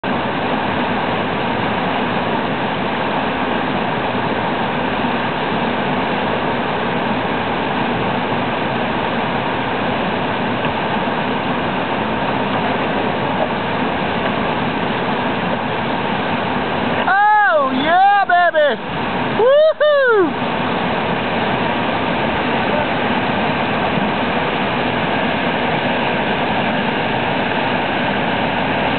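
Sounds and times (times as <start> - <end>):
whitewater rapids rushing: 0.0 - 28.9
person shouting: 17.0 - 18.8, 19.4 - 20.3.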